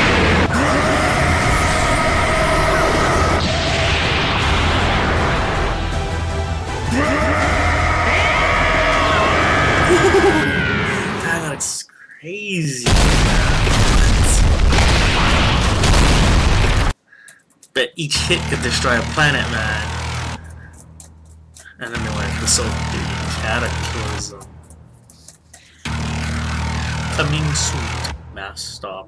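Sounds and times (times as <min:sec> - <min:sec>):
explosions and impacts rumbling: 0:00.0 - 0:06.9, 0:12.8 - 0:17.0.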